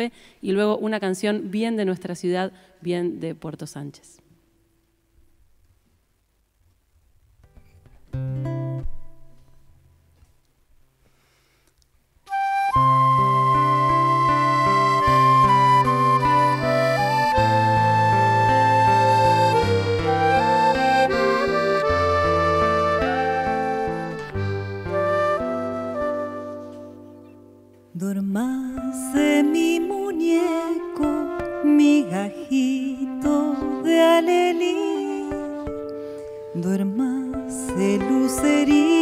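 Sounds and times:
guitar: 0:07.4 - 0:10.5, 0:12.3 - 0:39.0
accordion: 0:12.3 - 0:27.3
flute melody: 0:12.3 - 0:27.6, 0:30.2 - 0:36.2.

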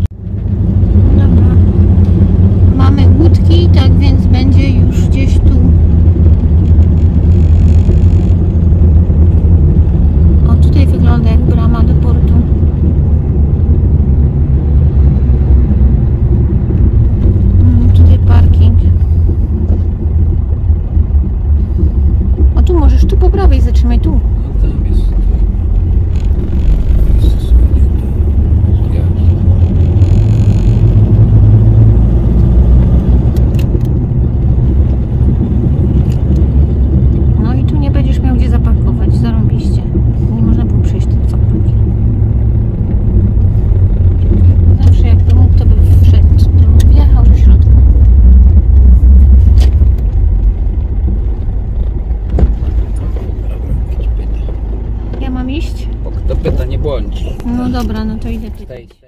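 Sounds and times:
engine and road rumble in cab: 0:00.0 - 0:59.0.

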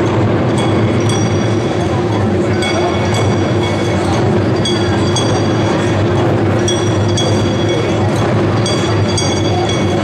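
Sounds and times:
small metal gong ringing: 0:00.0 - 0:10.0
taiko drums rolling beat: 0:00.0 - 0:10.0.

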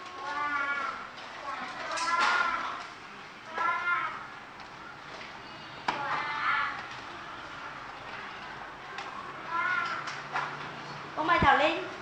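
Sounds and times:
children reading aloud together: 0:00.0 - 0:05.2, 0:05.8 - 0:10.8.

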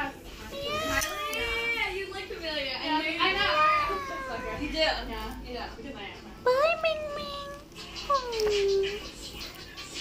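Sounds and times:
cat meowing: 0:00.6 - 0:01.8, 0:03.4 - 0:05.0.

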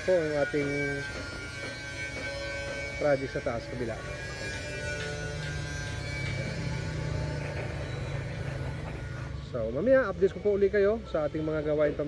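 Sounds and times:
music with long held tones: 0:00.0 - 0:12.0.

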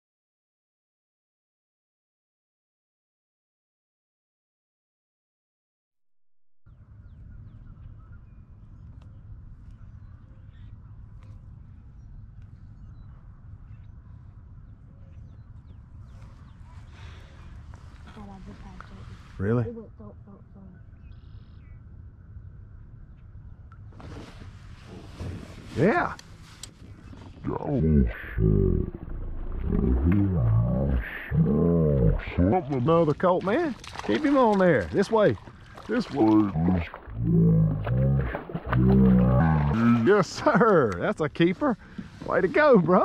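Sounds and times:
low steady outdoor rumble: 0:06.7 - 0:43.0
bird calling: 0:20.5 - 0:21.8.

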